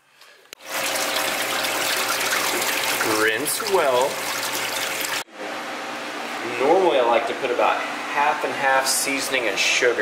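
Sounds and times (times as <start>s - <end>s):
tap water splashing into tub: 0.6s - 5.2s.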